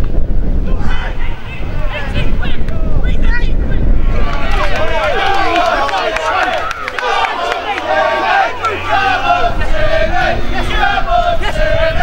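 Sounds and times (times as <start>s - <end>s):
wind rumble on microphone: 0.0s - 12.0s
voices shouting: 0.6s - 12.0s.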